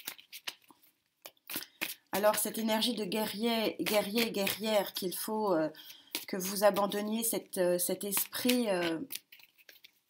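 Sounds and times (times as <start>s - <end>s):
cards being shuffled: 0.0s - 2.2s, 3.8s - 5.0s, 5.8s - 7.0s, 8.1s - 10.0s.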